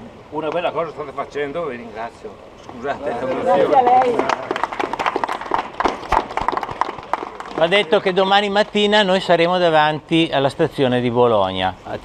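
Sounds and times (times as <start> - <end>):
people clapping: 3.2 - 8.8.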